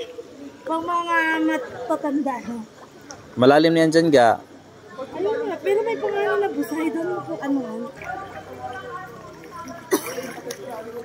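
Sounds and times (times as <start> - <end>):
voices talking: 0.0 - 11.0.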